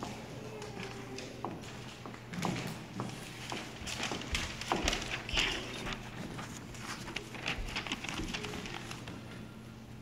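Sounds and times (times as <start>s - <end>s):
faint murmur of voices: 0.0s - 1.9s.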